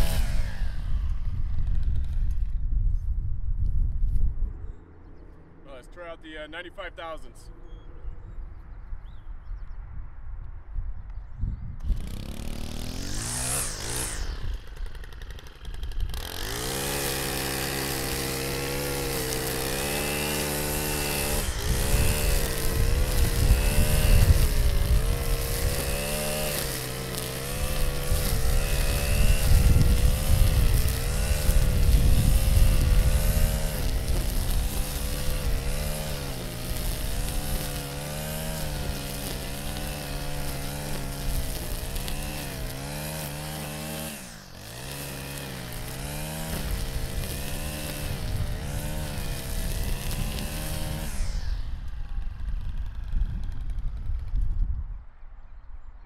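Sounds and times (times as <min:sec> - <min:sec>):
string trimmer engine revving: 0:00.0 - 0:02.5, 0:11.8 - 0:54.3
starter rope pulls: 0:11.8 - 0:52.0.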